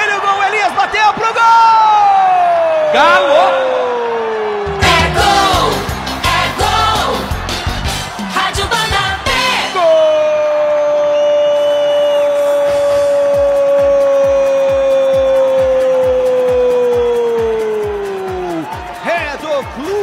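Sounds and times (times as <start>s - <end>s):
steady thumping beat: 4.7s - 9.6s.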